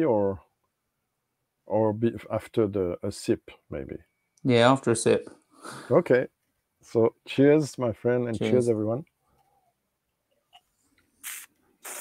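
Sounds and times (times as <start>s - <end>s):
hissing breaths: 5.5s - 6.0s, 11.2s - 12.0s.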